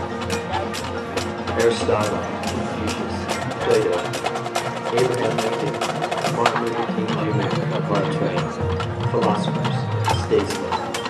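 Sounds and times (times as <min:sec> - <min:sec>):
sharp irregular percussion clicks: 0:00.2 - 0:11.0.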